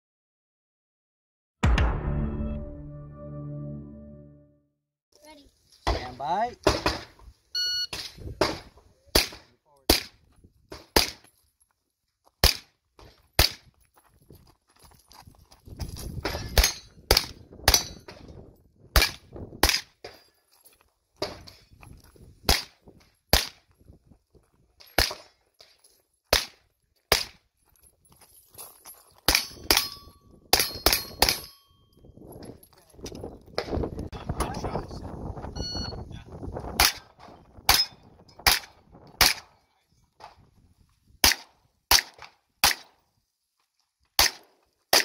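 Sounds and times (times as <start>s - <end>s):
outdoor background noise: 5.1s - 45.0s
gunshots: 37.7s - 39.6s, 41.2s - 43.0s, 44.2s - 45.0s.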